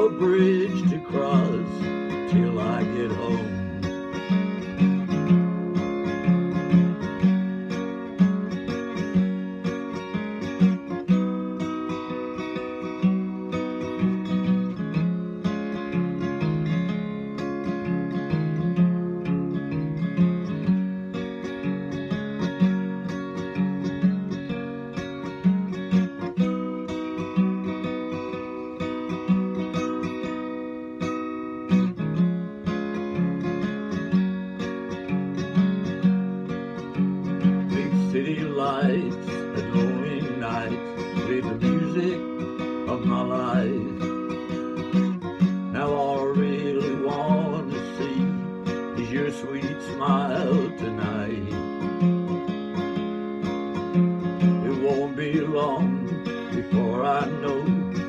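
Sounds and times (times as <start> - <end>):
acoustic guitar strumming: 0.0 - 58.0.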